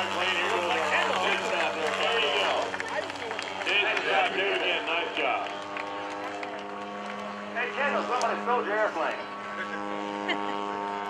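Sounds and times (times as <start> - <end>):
people talking: 0.0 - 5.6, 7.6 - 10.5
low hum: 0.0 - 11.0.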